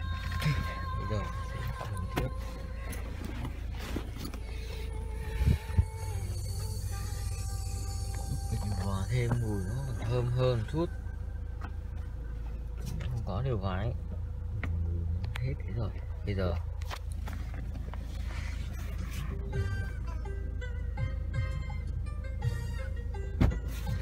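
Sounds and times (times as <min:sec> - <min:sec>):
car engine idling: 0:00.0 - 0:24.0.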